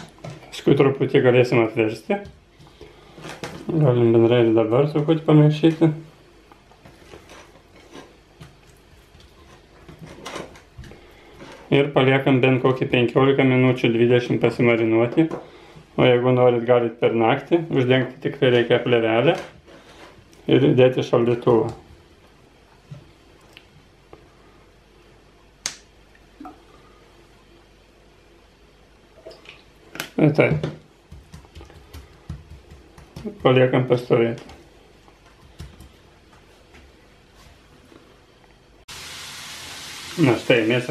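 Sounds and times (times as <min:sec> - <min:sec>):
hands mixing food: 0:00.0 - 0:13.6, 0:29.2 - 0:36.7.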